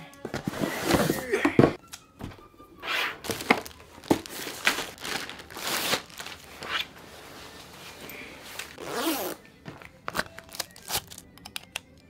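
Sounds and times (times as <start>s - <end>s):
cardboard boxes thunking down: 0.3s - 2.4s, 3.2s - 5.3s
packaging rustling and crinkling: 3.2s - 8.9s, 9.7s - 11.3s.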